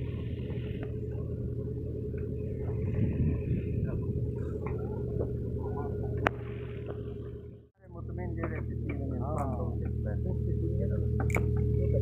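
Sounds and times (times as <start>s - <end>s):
tractor engine rumbling: 0.0s - 12.0s.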